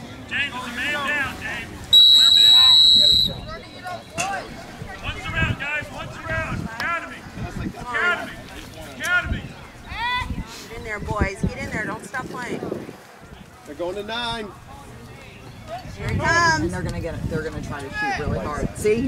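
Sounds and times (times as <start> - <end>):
referee's whistle blast: 1.9 - 3.9.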